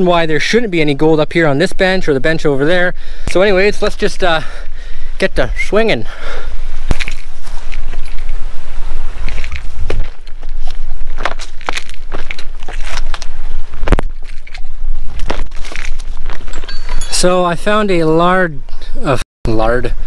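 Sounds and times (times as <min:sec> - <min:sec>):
low microphone rumble: 0:04.6 - 0:19.0
footsteps scrambling over rock: 0:06.5 - 0:17.4.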